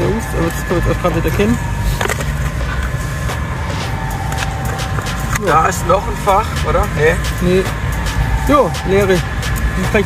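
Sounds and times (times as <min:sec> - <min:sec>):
faint whine: 0:00.0 - 0:10.0
low rumble: 0:00.0 - 0:10.0.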